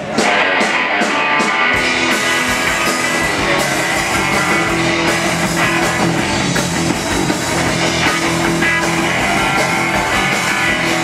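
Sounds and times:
bass guitar: 0:00.0 - 0:11.0
drum kit: 0:00.0 - 0:11.0
electric guitar: 0:00.0 - 0:11.0.

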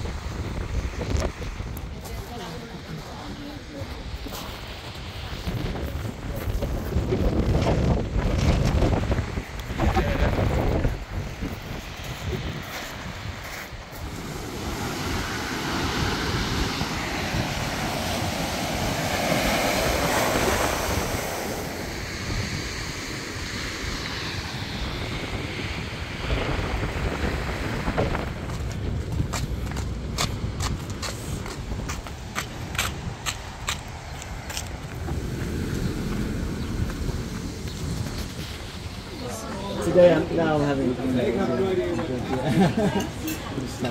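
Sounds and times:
sea surf breaking: 0:00.0 - 0:43.9
wind rumbling on microphone: 0:00.0 - 0:43.9.

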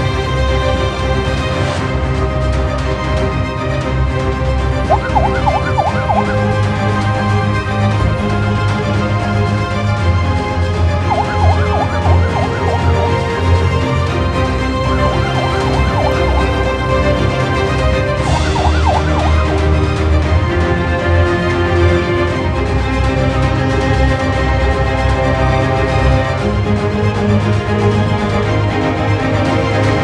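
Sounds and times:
background music: 0:00.0 - 0:30.0
fast yelping siren: 0:04.9 - 0:06.4, 0:11.0 - 0:13.2, 0:15.1 - 0:16.7, 0:18.3 - 0:19.4.

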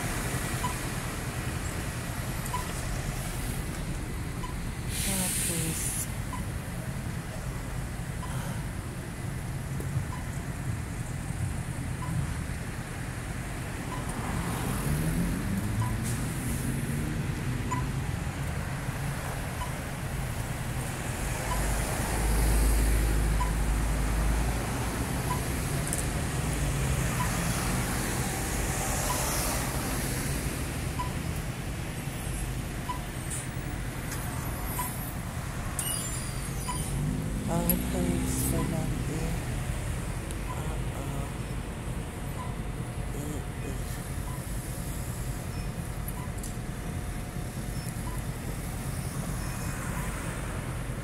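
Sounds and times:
cars passing: 0:00.0 - 0:51.0
deep rumble of passing vehicle: 0:05.9 - 0:51.0.

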